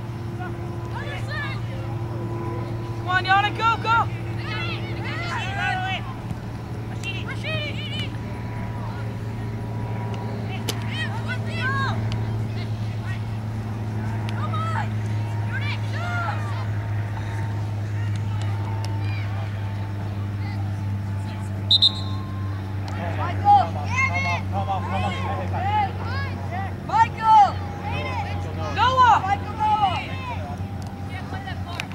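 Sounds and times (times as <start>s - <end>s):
distant shouts and calls: 0.0s - 31.9s
steady low hum: 0.0s - 31.9s.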